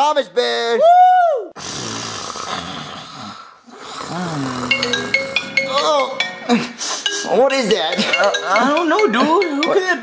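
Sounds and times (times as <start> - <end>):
person snoring: 1.6 - 6.0
phone ringtone chiming: 4.6 - 10.0.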